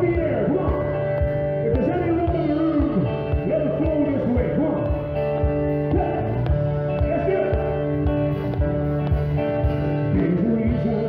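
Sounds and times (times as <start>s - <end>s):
bass beat: 0.0s - 11.0s
guitar-led country music: 0.0s - 11.0s
person singing: 10.0s - 11.0s.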